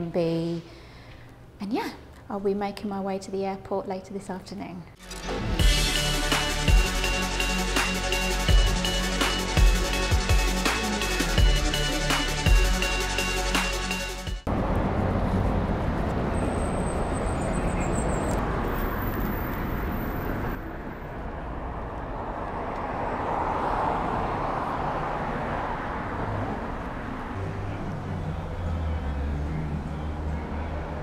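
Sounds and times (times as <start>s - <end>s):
electronic background music: 5.0s - 14.5s
cars passing by: 5.5s - 31.0s.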